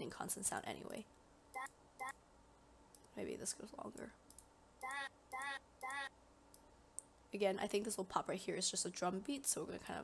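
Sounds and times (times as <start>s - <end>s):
sharp click: 4.3s - 4.5s.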